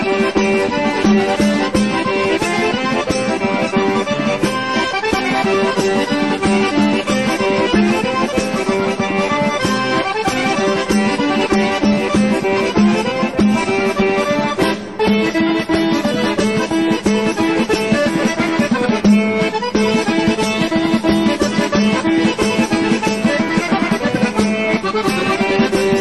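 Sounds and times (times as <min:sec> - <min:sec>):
accordion folk tune: 0:00.0 - 0:26.0.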